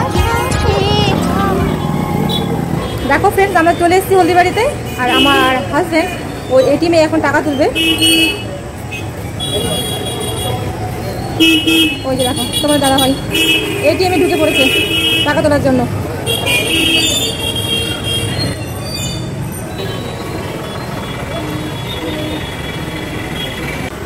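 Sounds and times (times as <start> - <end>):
vehicle horns honking: 0.0 - 6.8, 7.4 - 10.7, 11.4 - 18.7, 19.7 - 23.9
rumble of engines: 0.0 - 24.0.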